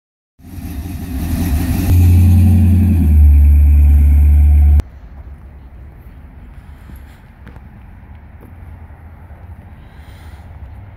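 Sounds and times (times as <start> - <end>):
engine deep low rumble: 0.4 - 10.8
faint outdoor noise: 0.4 - 10.9.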